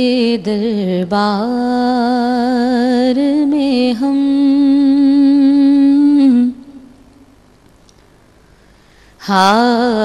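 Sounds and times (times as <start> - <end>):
woman singing unaccompanied: 0.0 - 7.1, 9.2 - 10.0.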